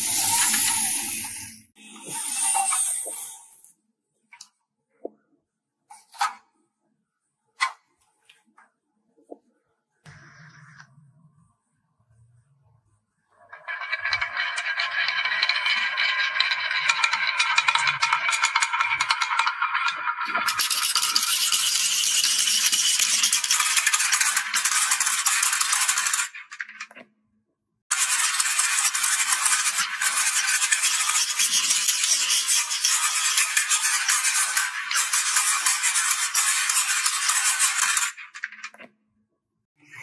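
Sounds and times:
balls rattling down wooden track: 13.5 - 27.0, 28.0 - 38.8.

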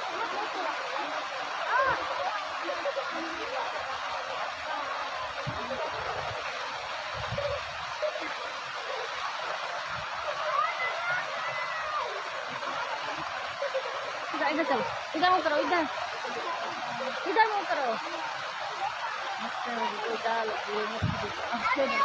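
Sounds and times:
waterfall rushing into pool: 0.0 - 22.0.

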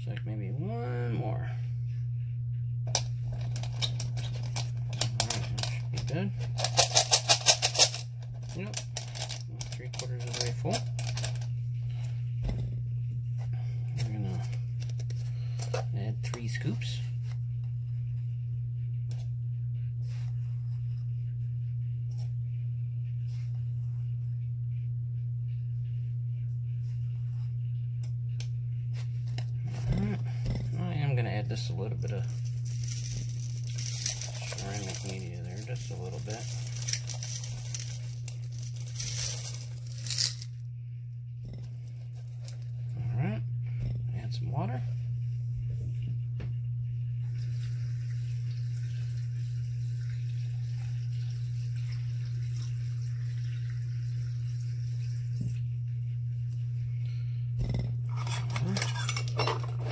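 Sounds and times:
steady low hum: 0.0 - 59.9
stones clicking and knocking: 32.4 - 40.5.

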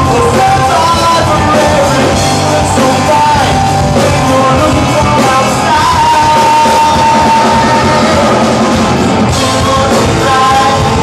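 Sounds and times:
drum kit: 0.0 - 11.0
electric guitar: 0.0 - 11.0.

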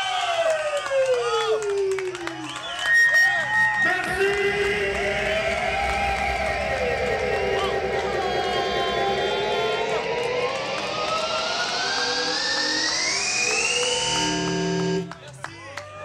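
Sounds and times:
electronic music rising sweep: 2.2 - 15.2.

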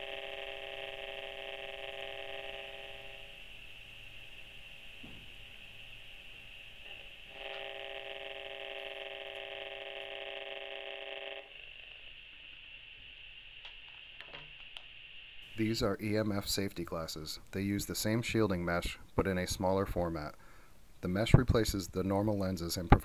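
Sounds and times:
electronic meter buzz: 0.0 - 16.3.

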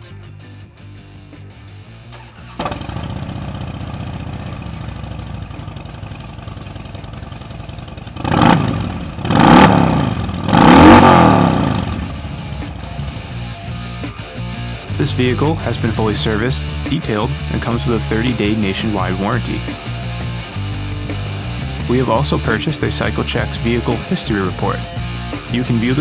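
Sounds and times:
motorcycle engine starting and idling: 2.0 - 13.6
motorcycle engine revving: 2.2 - 13.6.

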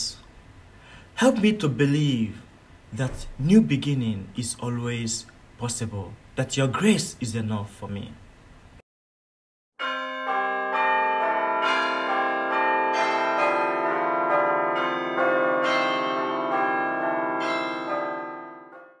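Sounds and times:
bells ringing: 9.8 - 19.0.

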